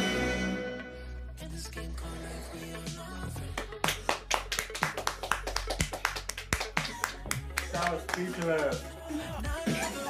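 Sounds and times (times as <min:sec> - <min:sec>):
soft music: 0:00.0 - 0:10.0.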